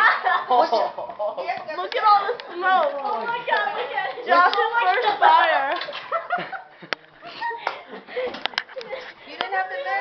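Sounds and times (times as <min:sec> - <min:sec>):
people laughing: 0:00.0 - 0:01.4, 0:03.8 - 0:09.2.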